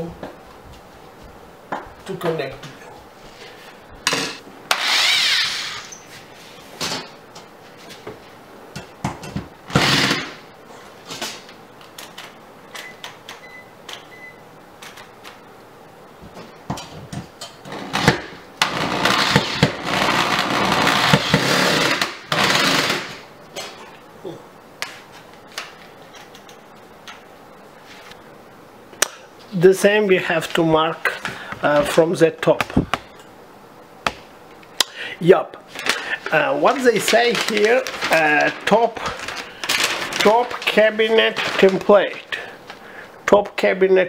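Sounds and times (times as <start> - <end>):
electric drill driving screw into metal: 4.2 - 5.9, 9.7 - 10.4, 17.7 - 23.2.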